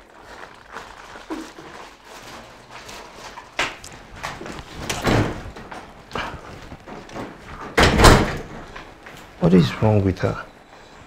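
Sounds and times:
door slamming: 4.8s - 5.8s, 7.2s - 8.7s.

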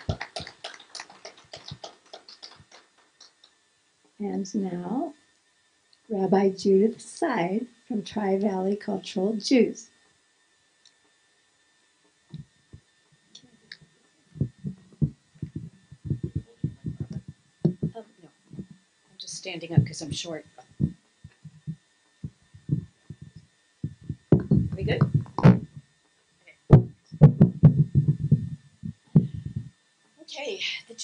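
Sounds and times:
small audience applauding: 0.0s - 3.6s
microphone handling thumps: 14.4s - 18.8s, 19.7s - 25.9s, 26.7s - 29.7s.

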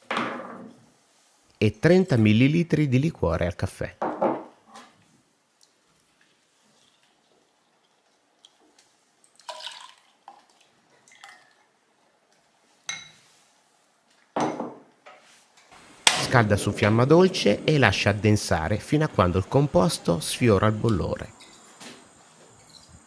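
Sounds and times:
liquid drips: 5.6s - 11.7s.

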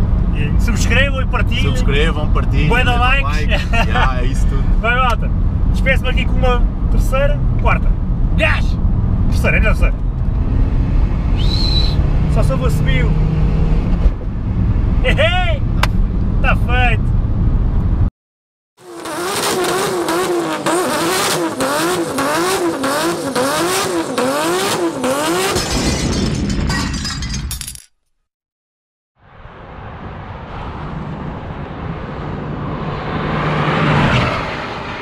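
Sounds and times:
car driving on road: 0.0s - 18.1s, 18.8s - 25.6s, 29.2s - 35.0s
car engine inside cabin: 0.0s - 18.1s, 18.8s - 25.5s.

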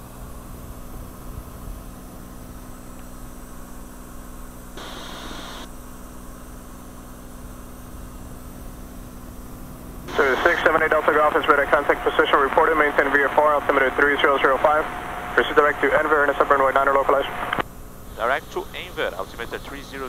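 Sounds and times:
aircraft engine and propeller drone: 0.0s - 20.0s.

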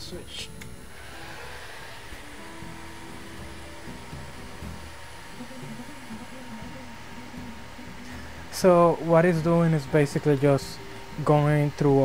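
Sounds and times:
cooling fan whirring: 0.0s - 12.0s
faint steady whine: 0.0s - 12.0s.

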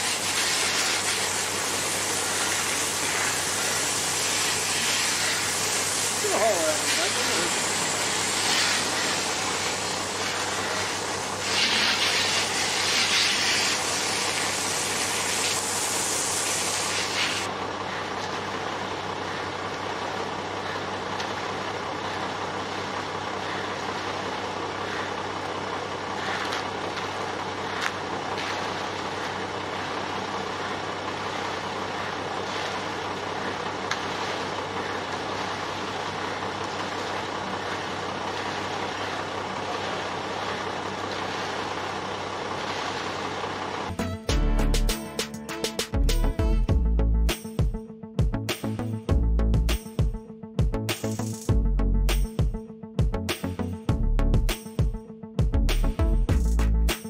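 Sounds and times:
hand tools scraping wet concrete: 0.0s - 15.7s, 16.3s - 17.5s, 26.1s - 27.1s
loud hiss: 0.0s - 17.5s
truck engine idling: 0.0s - 47.5s.

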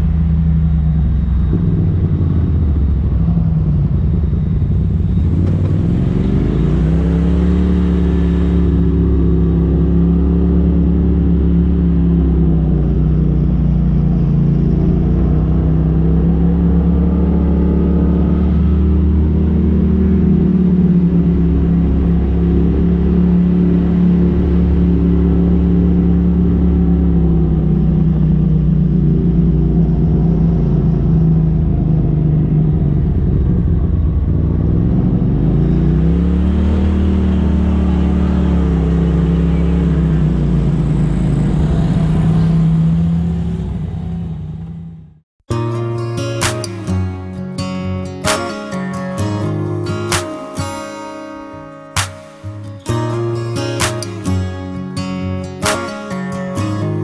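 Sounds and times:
engine running at low revs: 0.0s - 50.8s.

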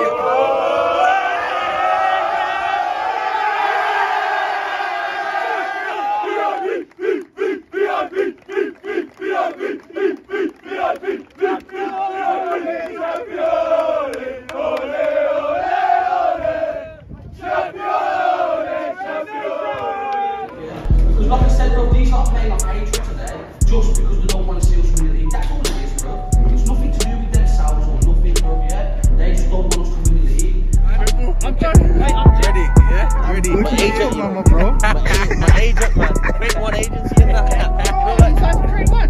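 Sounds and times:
men chanting and shouting: 0.0s - 39.0s.

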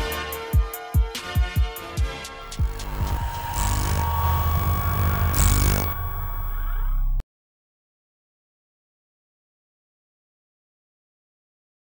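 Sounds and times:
hissing noise swells: 2.4s - 7.2s
loud low rumble: 2.4s - 7.2s.

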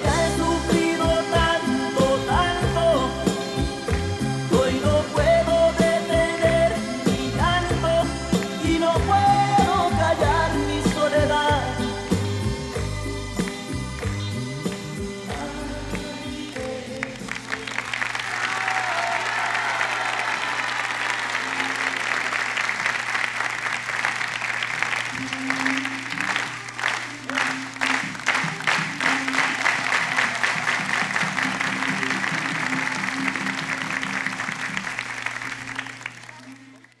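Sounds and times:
audience applauding and cheering: 0.0s - 11.3s, 12.1s - 37.0s.

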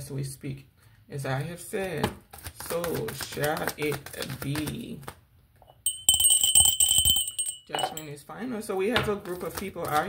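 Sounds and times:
glass hand bell ringing: 5.7s - 8.2s.

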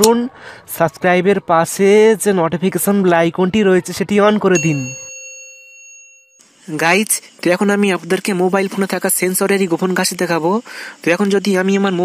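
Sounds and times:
notification bell ding: 4.6s - 6.4s.

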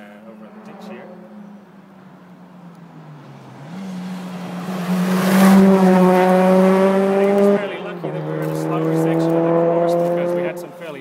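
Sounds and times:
rally car engine approaching: 0.0s - 11.0s.

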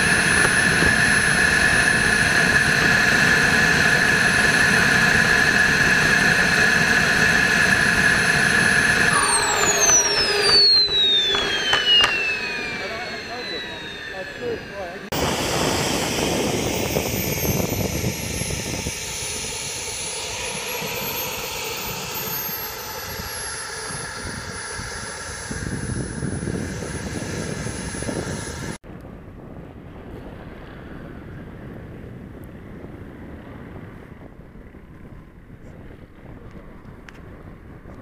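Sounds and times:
model jet engine whining: 0.0s - 38.0s
wind noise: 0.0s - 38.0s.

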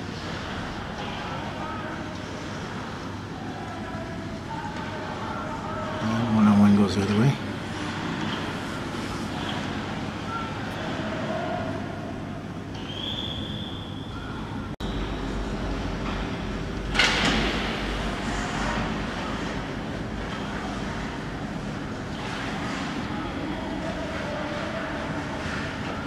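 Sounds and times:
arena background noise: 0.0s - 26.0s.

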